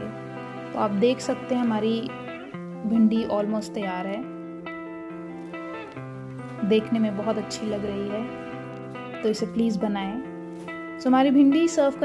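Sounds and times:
instrumental music with held notes: 0.0s - 12.0s.

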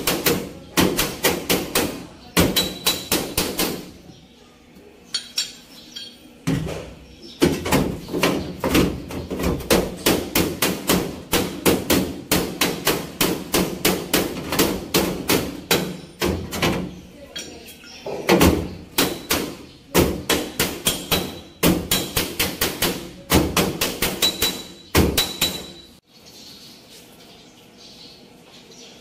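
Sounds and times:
hammering on metal panel: 0.0s - 4.0s, 6.5s - 17.0s, 18.1s - 25.9s.

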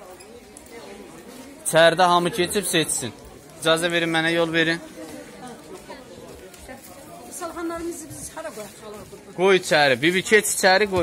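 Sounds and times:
background chatter of people: 0.0s - 11.0s.

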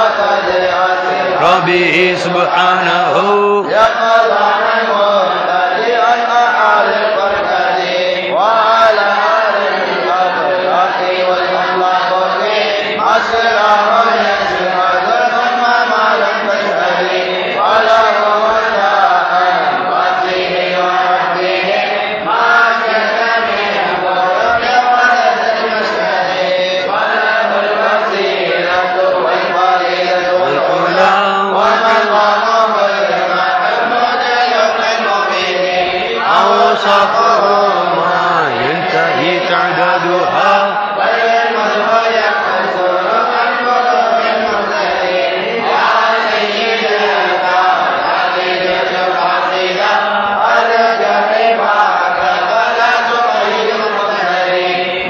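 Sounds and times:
men chanting verses: 0.0s - 55.0s.

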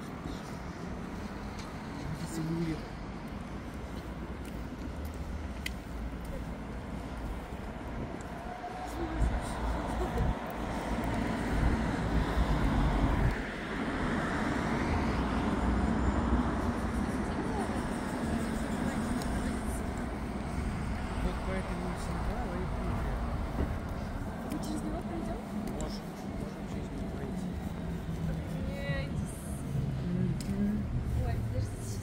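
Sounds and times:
car passing: 0.0s - 32.0s
city road traffic: 0.0s - 32.0s.

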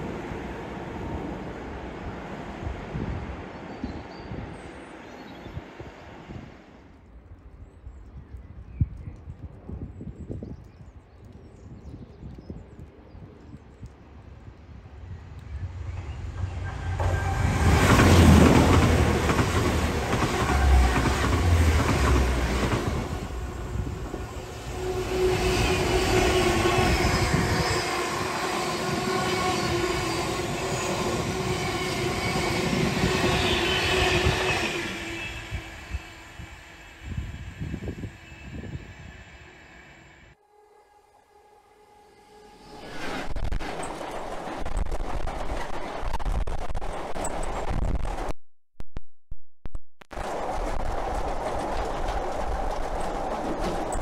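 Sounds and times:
diesel locomotives passing: 14.2s - 40.4s
wagons rolling past: 50.2s - 54.0s.

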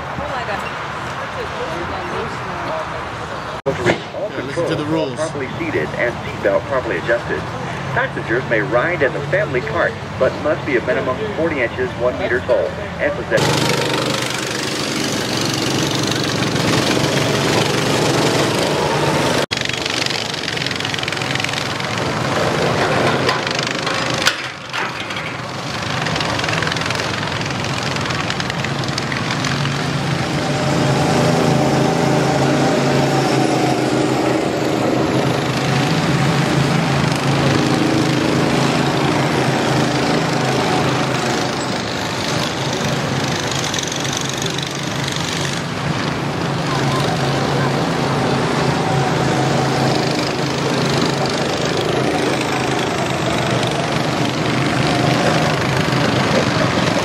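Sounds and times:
go-kart engines droning: 0.0s - 57.0s.

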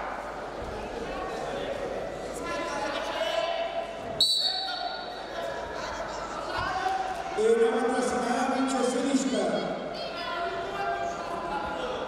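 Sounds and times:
voices shouting in echoing hall: 1.0s - 12.0s
referee whistle blast: 4.2s - 5.0s.

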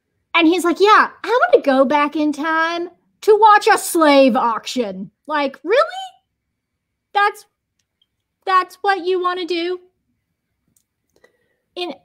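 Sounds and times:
woman speaking: 0.4s - 6.2s, 7.2s - 7.5s, 8.4s - 9.9s, 11.8s - 12.0s.

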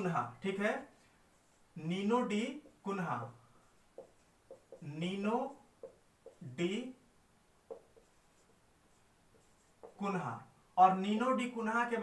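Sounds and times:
marker squeaking on whiteboard: 0.0s - 6.8s, 7.6s - 10.2s.

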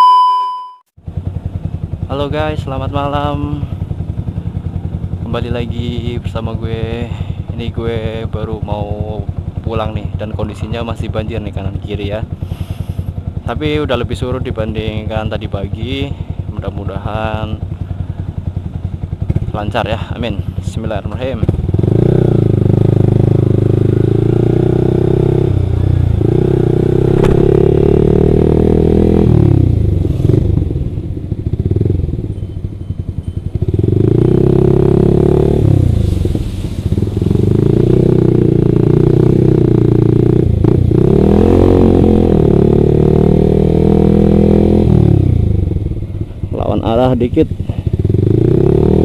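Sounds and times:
motorcycle engine revving: 1.0s - 49.0s.

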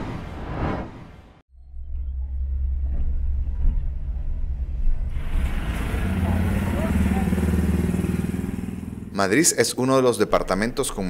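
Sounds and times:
street traffic rumble: 1.8s - 9.6s
truck engine running: 1.9s - 9.2s.

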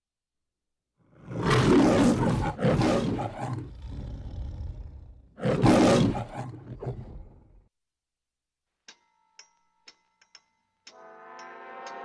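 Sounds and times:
big cat roaring: 1.1s - 7.6s.

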